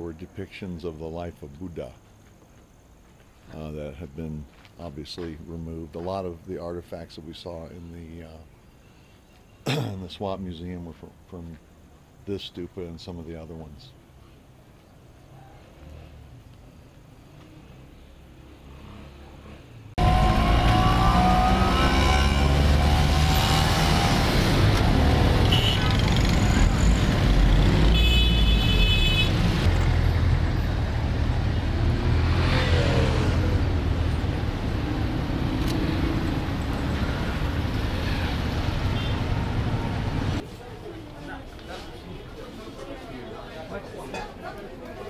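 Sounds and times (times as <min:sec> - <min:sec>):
cars and motorbikes passing: 0:15.0 - 0:40.4
vehicle horn: 0:25.4 - 0:26.4, 0:27.9 - 0:29.7, 0:38.9 - 0:39.3.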